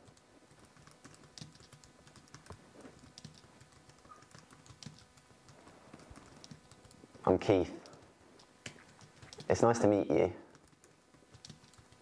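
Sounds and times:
faint keyboard typing: 0.0s - 12.0s.

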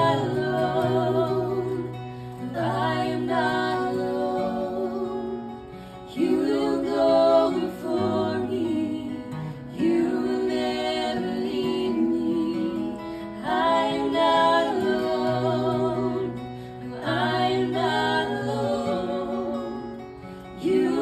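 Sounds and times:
man and woman singing in harmony: 0.0s - 21.0s
strummed acoustic guitar: 0.0s - 21.0s.

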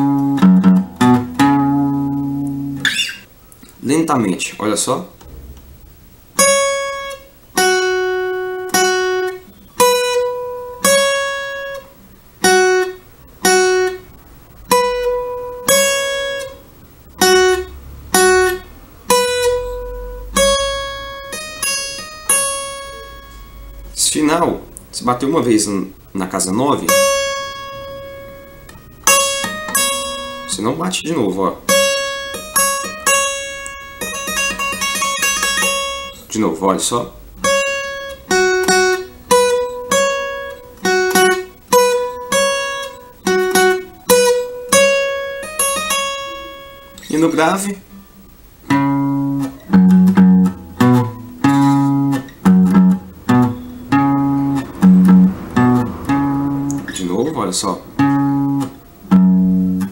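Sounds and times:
acoustic guitar plucked melody: 0.0s - 3.9s, 5.2s - 59.9s.

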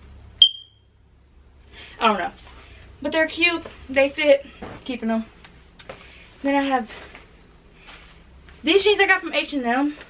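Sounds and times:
high-pitched electronic beep: 0.4s - 0.8s.

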